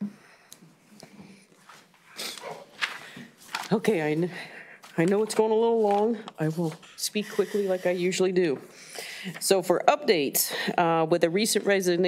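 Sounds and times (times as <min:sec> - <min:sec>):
people shuffling in seats: 0:01.0 - 0:06.8.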